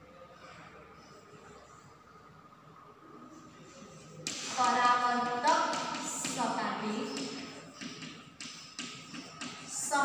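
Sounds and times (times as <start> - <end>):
chalk tapping on blackboard: 4.2 - 10.0.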